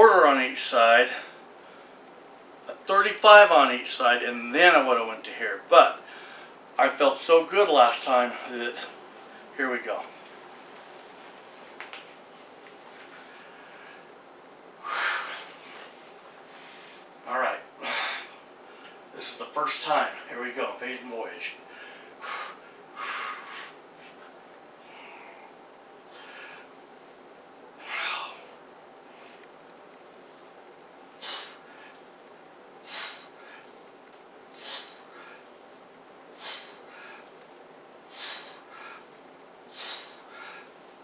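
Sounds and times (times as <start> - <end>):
low room noise: 0.0 - 41.0
man breathing forcefully: 6.0 - 6.6, 14.8 - 17.1, 17.8 - 18.8, 21.6 - 24.1, 24.8 - 26.7, 27.8 - 29.4, 31.1 - 32.1, 32.8 - 33.8, 34.5 - 35.6, 36.3 - 40.9
man's sharp breath through nose: 21.7 - 23.8, 31.2 - 32.0, 32.8 - 33.7, 34.5 - 35.5, 36.3 - 37.3, 38.1 - 39.1, 39.7 - 40.8.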